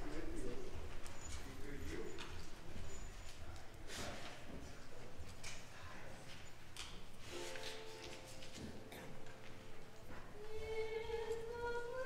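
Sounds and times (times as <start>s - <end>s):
faint ticks and shuffles: 0.0s - 12.0s.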